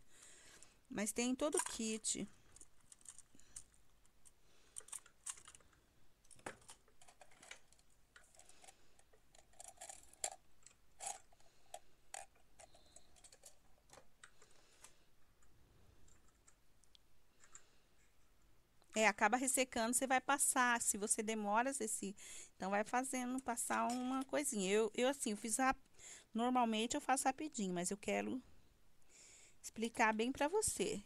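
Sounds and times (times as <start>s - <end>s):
small tools rattling in a cup: 1.3s - 3.8s, 6.3s - 14.0s.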